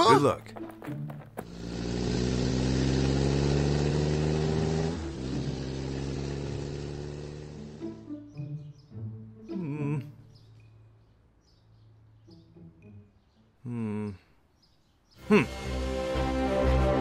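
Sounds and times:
vehicle engine running: 0:00.8 - 0:08.1.

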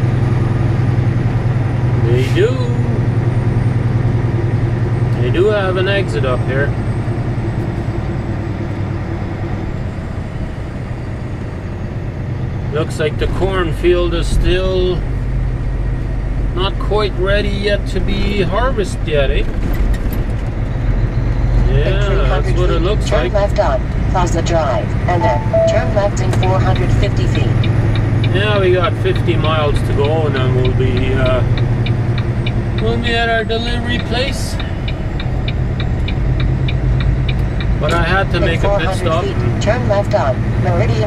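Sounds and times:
diesel truck engine drone: 0:00.0 - 0:41.0
person speaking: 0:02.0 - 0:03.1, 0:21.7 - 0:23.6, 0:25.1 - 0:27.0, 0:37.8 - 0:39.6.

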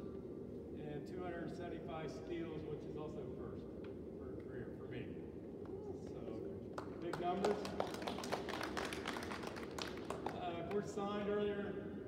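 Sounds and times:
scattered applause: 0:06.8 - 0:10.9.

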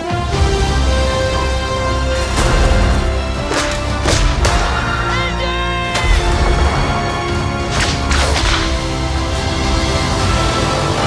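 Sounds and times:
trailer score with held notes: 0:00.0 - 0:11.0.

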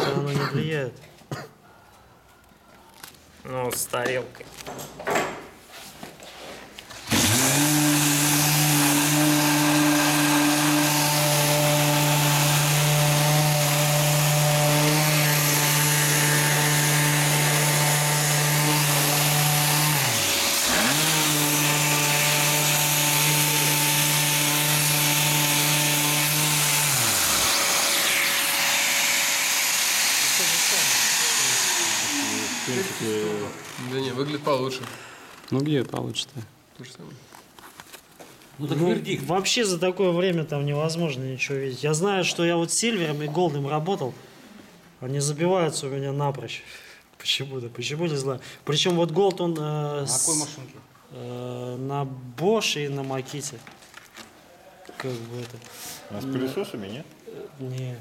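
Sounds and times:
electric orbital sander running: 0:07.1 - 0:34.7.

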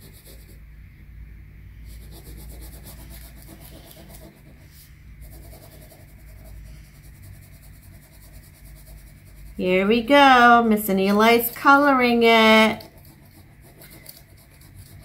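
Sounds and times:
crayon scratching on paper: 0:00.0 - 0:00.6, 0:01.8 - 0:10.0, 0:11.3 - 0:15.0.

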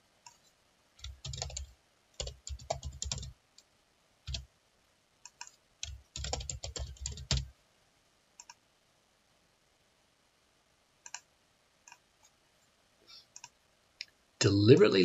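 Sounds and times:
mouse clicks: 0:00.2 - 0:01.5, 0:05.2 - 0:06.0, 0:08.4 - 0:08.6, 0:11.0 - 0:11.3, 0:13.3 - 0:13.6
keyboard typing: 0:00.3 - 0:03.3, 0:04.3 - 0:04.5, 0:05.3 - 0:07.5, 0:11.0 - 0:11.3.

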